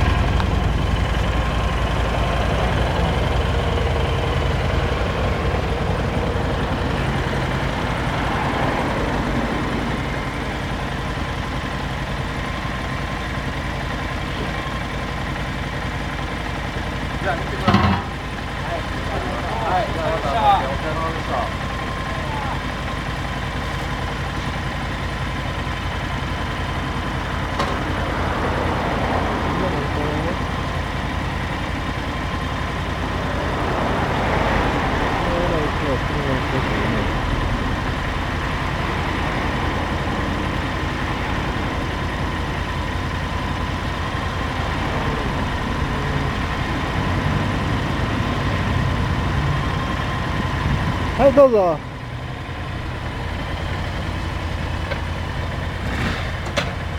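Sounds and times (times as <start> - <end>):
motorcycles idling: 0.0 - 56.9.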